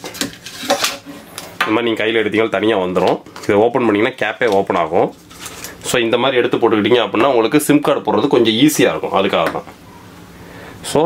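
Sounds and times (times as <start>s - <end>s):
man speaking: 1.6s - 5.2s, 5.8s - 9.8s.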